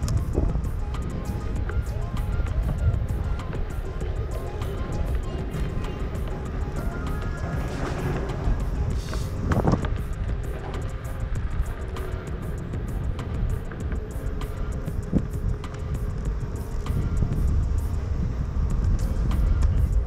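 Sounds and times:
faint motor whine: 0:00.0 - 0:20.0
wheel rumbling over concrete: 0:00.0 - 0:20.0
wind on microphone: 0:00.0 - 0:20.0.

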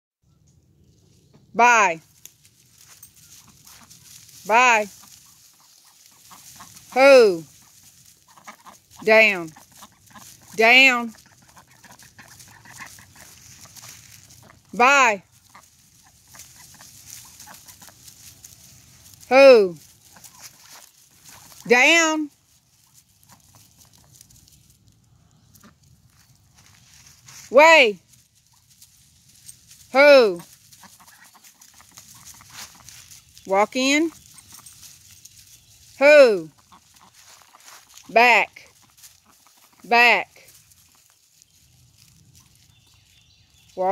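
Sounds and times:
soft rustles on dry leaves: 0:00.3 - 0:43.9
ducks calling: 0:02.8 - 0:22.2, 0:25.4 - 0:27.5, 0:30.0 - 0:43.9
dog calls: 0:04.9 - 0:14.8, 0:15.4 - 0:18.3, 0:30.4 - 0:33.2, 0:34.1 - 0:35.1.

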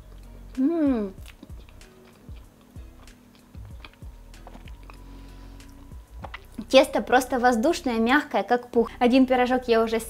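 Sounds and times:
person chewing soft bun: 0:00.0 - 0:06.6
quiet background music: 0:00.0 - 0:10.0.

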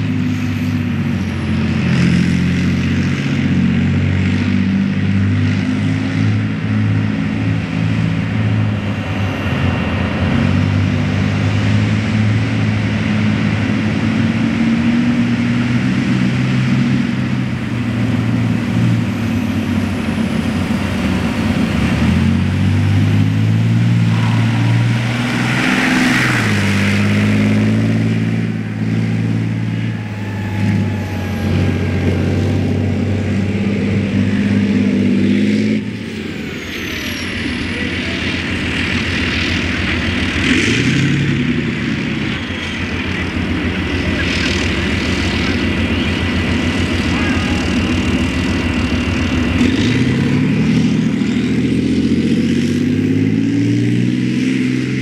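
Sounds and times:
tank diesel engine under load: 0:00.0 - 0:55.0.

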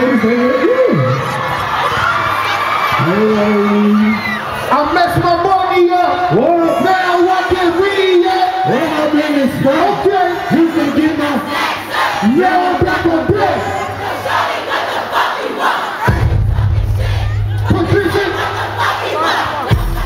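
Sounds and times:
concert crowd yelling: 0:00.0 - 0:20.0.

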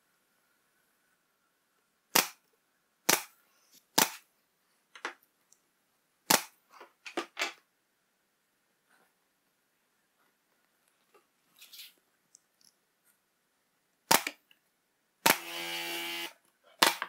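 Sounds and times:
nail gun shots: 0:02.1 - 0:02.4, 0:03.1 - 0:03.3, 0:04.0 - 0:04.2, 0:06.3 - 0:06.6, 0:14.1 - 0:14.4, 0:15.2 - 0:15.6, 0:16.8 - 0:17.0.

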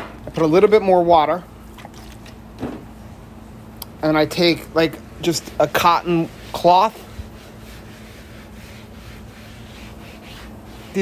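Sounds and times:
faint steady hum: 0:00.0 - 0:11.0
rag wiping wet metal griddle: 0:04.3 - 0:11.0.

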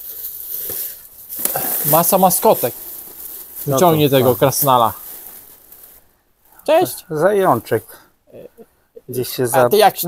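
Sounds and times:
rubbish bags rustling: 0:00.0 - 0:06.9.

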